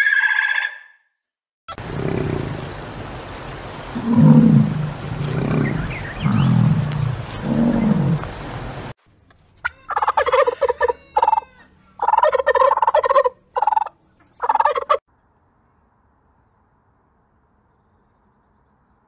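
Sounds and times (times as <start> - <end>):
turkeys gobbling: 1.8 - 8.6, 9.6 - 15.0
bison bellowing: 1.8 - 8.8.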